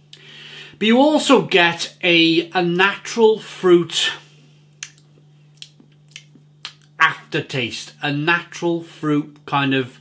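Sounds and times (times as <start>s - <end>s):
low steady hum: 0.0s - 10.0s
wet lip smacks: 4.7s - 6.9s.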